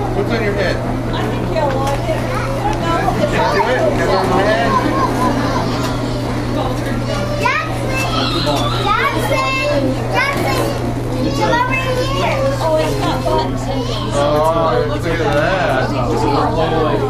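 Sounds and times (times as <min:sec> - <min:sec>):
adult chatter: 0:00.0 - 0:17.0
children's voices: 0:01.2 - 0:14.5.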